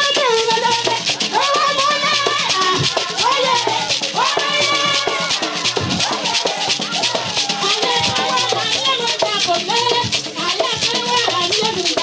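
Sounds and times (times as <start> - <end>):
rattles shaken rhythmically: 0.0 - 12.0
voices singing: 0.0 - 12.0.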